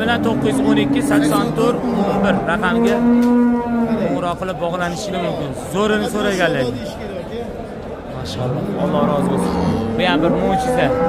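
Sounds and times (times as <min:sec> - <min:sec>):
cow mooing: 0:00.0 - 0:04.2, 0:08.3 - 0:11.0.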